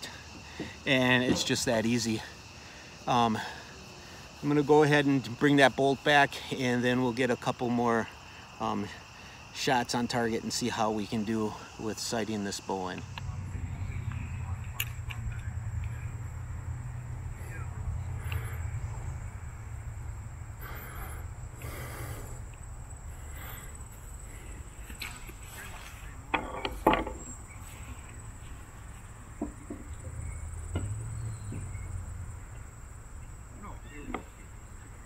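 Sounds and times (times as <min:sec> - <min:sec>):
low rumble: 0:13.1 - 0:20.6.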